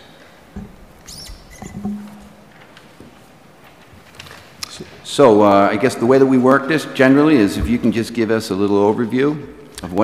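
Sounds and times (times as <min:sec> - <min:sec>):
soft knock: 0:00.6 - 0:02.4
short high squeak: 0:01.0 - 0:02.0.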